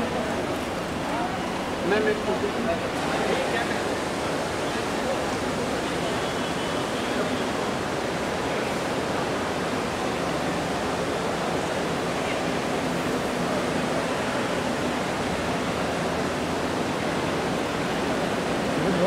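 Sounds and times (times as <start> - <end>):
crowd hubbub: 0.0 - 19.0.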